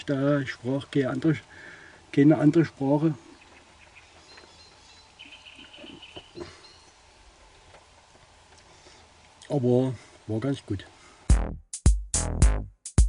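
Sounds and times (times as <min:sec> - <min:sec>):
faint bird call: 0:03.1 - 0:07.1.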